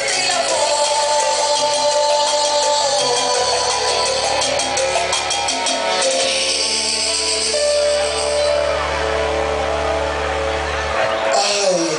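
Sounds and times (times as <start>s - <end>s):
loud dance music: 0.0s - 11.9s.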